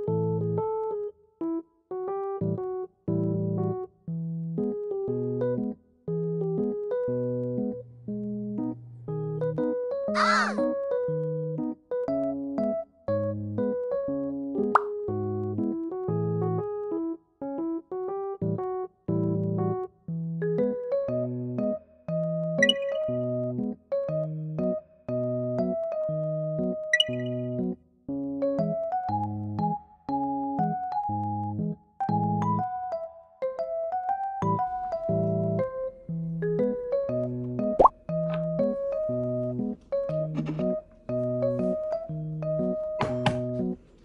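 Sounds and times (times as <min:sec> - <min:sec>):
bouncy keyboard music: 0:00.0 - 0:44.0
rising pop sound effect: 0:14.7 - 0:15.0, 0:22.6 - 0:23.1, 0:27.0 - 0:27.5, 0:37.8 - 0:38.0
rising plop sound effect: 0:14.8 - 0:15.0, 0:37.8 - 0:38.0.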